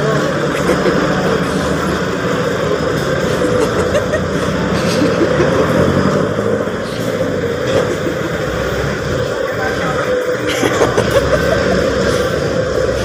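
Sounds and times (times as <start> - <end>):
vehicle engines running: 0.0 - 13.0.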